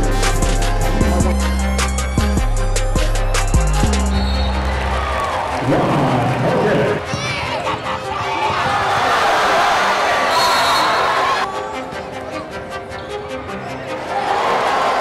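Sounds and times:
music with heavy bass beat: 0:00.0 - 0:04.2
arena crowd noise: 0:03.6 - 0:15.0.

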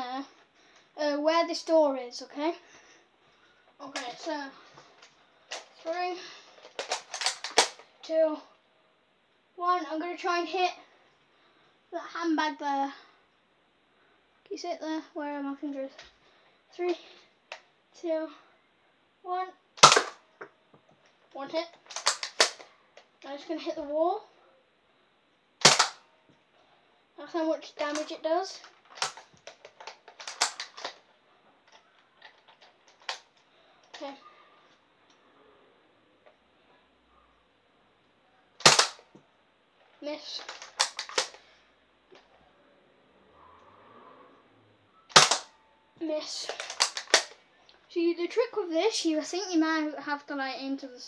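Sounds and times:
sharp clicks and knocks: 0:21.8 - 0:22.6, 0:28.7 - 0:31.0, 0:40.4 - 0:41.4, 0:46.5 - 0:47.4.

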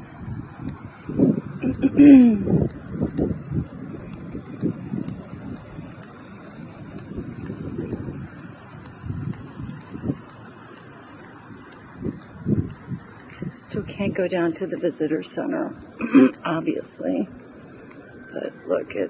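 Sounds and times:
wind rumbling on microphone: 0:00.0 - 0:19.0
person coughing: 0:16.0 - 0:16.4.

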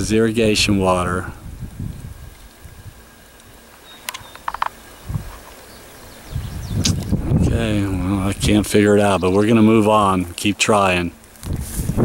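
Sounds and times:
bird calling: 0:02.4 - 0:07.2.

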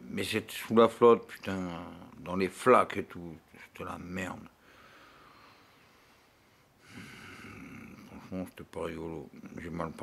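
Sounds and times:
man breathing: 0:04.6 - 0:08.0.

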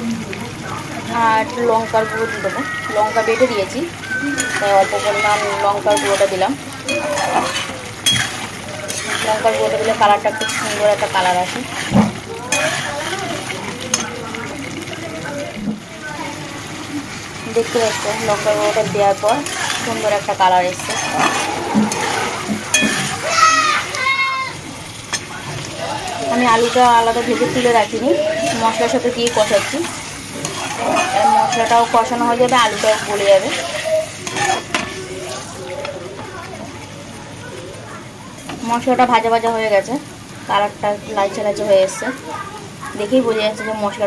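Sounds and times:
gravy bubbling and sizzling: 0:00.0 - 0:44.0
metal spatula stirring in a pan: 0:03.0 - 0:15.5, 0:17.0 - 0:24.0, 0:24.8 - 0:35.6.

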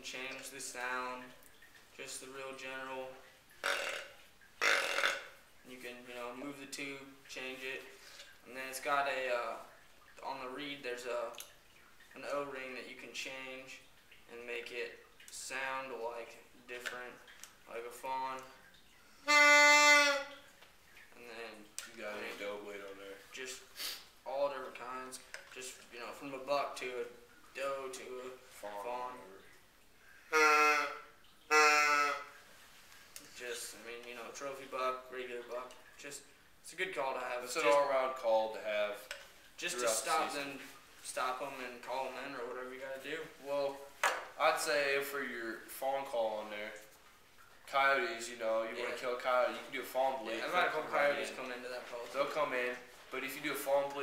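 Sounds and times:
deer grunt call: 0:03.6 - 0:05.3, 0:30.3 - 0:32.3.

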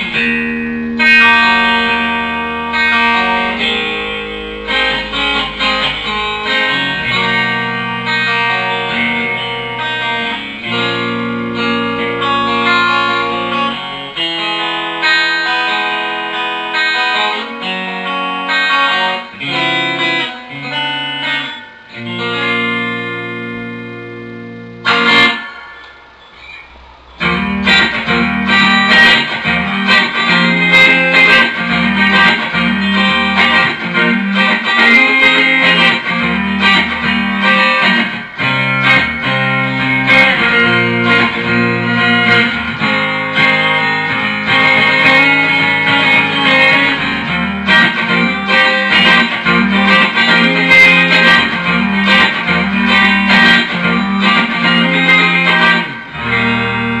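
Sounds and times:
bass notes: 0:00.0 - 0:14.2, 0:21.9 - 0:57.0
electric guitar: 0:00.0 - 0:57.0.

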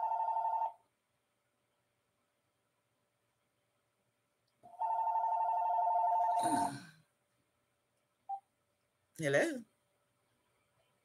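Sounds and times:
telephone ringing: 0:00.0 - 0:00.8, 0:04.7 - 0:06.4.

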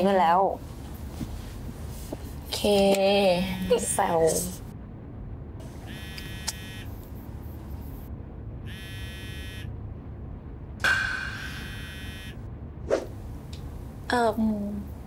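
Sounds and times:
buzzing electronic tone: 0:05.6 - 0:09.8, 0:11.4 - 0:12.5.

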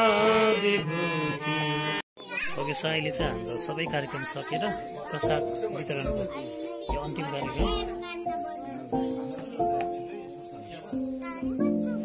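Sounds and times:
devotional chant-like singing: 0:00.0 - 0:01.9.

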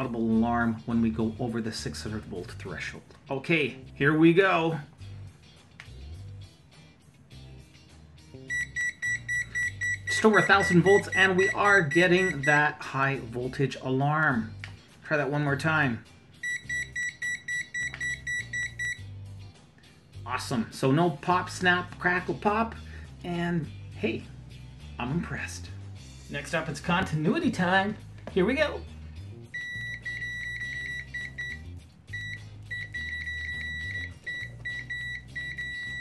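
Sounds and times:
rapid high beeps: 0:08.5 - 0:12.6, 0:16.4 - 0:19.0, 0:29.6 - 0:36.0
multimeter continuity beeper tone: 0:32.2 - 0:36.0.

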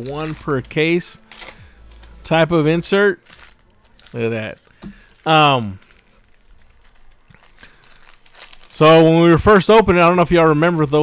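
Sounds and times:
foil wrappers crinkling: 0:00.0 - 0:11.0.

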